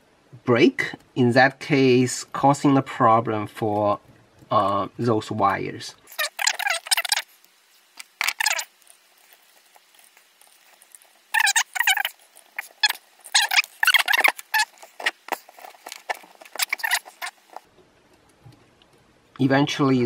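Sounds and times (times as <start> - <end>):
electrical tape pulled and wrapped: 6.1 - 17.7.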